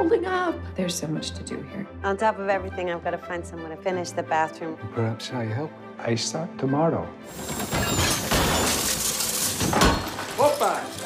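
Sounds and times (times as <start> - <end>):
music: 0.0 - 11.0
something breaking with a crash: 7.3 - 11.0.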